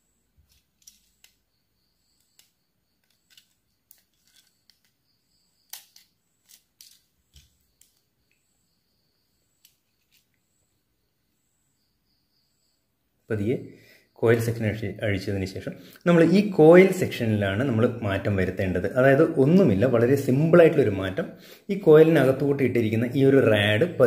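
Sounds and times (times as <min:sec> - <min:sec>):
small plastic clicks and snaps: 0:02.2 - 0:05.0, 0:05.7 - 0:08.4.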